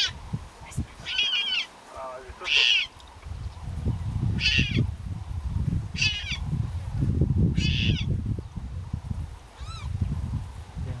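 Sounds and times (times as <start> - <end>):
leopard cub crying: 1.0 - 1.7, 2.4 - 3.0, 4.4 - 4.9, 6.0 - 6.4, 7.6 - 8.1, 9.6 - 9.9.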